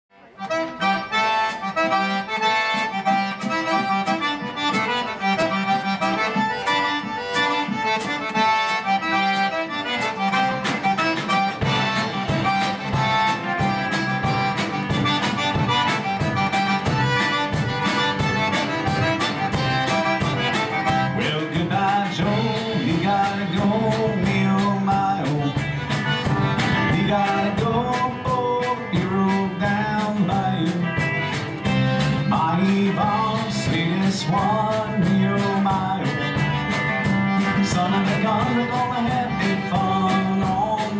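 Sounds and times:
band playing instrumental: 0.1s - 40.9s
button accordion: 0.2s - 40.9s
steady beat: 0.4s - 40.9s.

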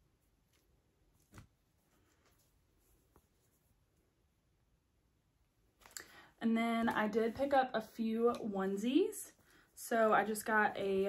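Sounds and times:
t-shirt rustling: 0.2s - 4.0s.

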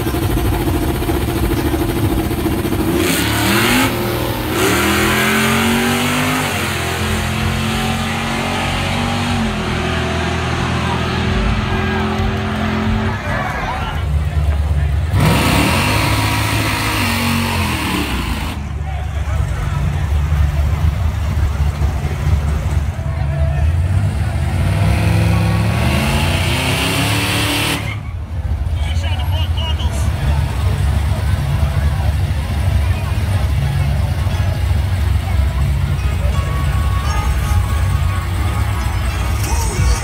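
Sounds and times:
steady low rumble: 0.0s - 5.5s
car engine revving hard: 1.9s - 13.6s, 15.1s - 18.6s, 24.2s - 28.0s.

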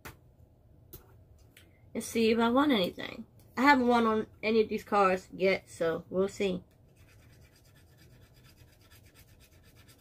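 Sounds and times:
scratching scratch-off card: 6.9s - 10.0s.

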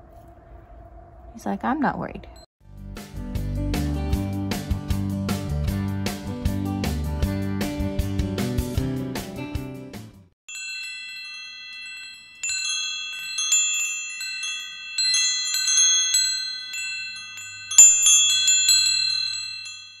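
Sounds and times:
wind chimes ringing: 10.5s - 20.0s.

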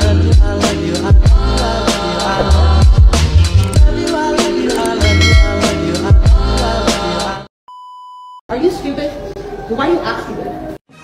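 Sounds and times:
background music: 0.0s - 7.5s
intro music: 0.4s - 7.4s.

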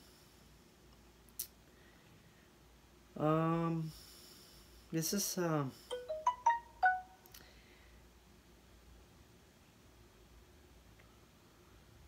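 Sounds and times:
phone alert chiming melody: 5.9s - 7.2s.

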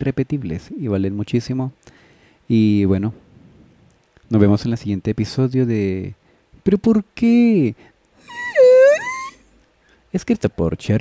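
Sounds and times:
high drawn-out wail: 8.2s - 9.5s.

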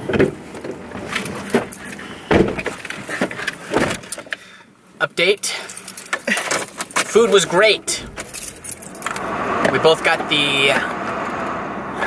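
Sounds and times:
handling knocks and rustles: 0.0s - 4.4s, 5.7s - 9.8s.

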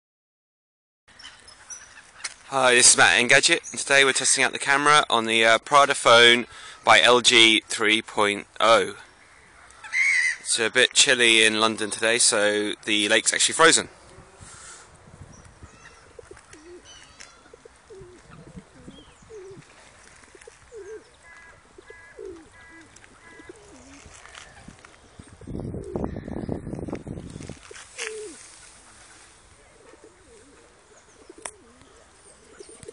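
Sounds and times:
faint outdoor background noise: 1.1s - 32.9s
geese giving soft low calls: 15.6s - 26.4s.

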